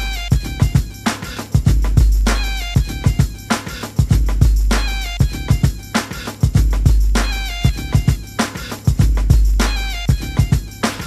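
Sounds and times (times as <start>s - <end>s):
hip hop drum beat: 0.0s - 11.0s.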